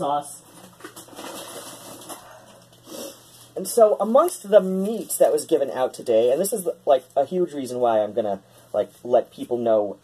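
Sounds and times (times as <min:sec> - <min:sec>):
packaging rustling: 0:00.4 - 0:02.8.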